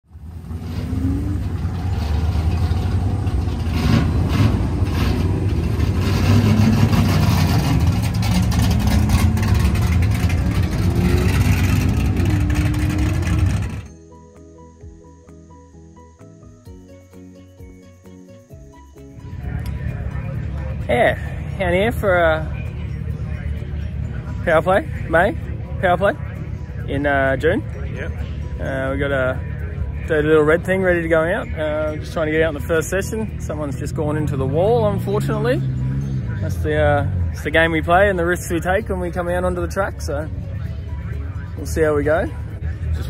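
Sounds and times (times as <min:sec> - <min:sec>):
car engine revving: 0:00.1 - 0:13.9, 0:30.0 - 0:40.6.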